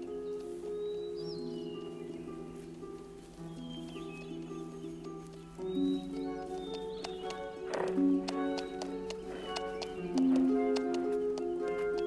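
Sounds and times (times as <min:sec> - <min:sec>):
horse hooves clopping: 0:00.0 - 0:12.0
horse call: 0:07.5 - 0:12.0.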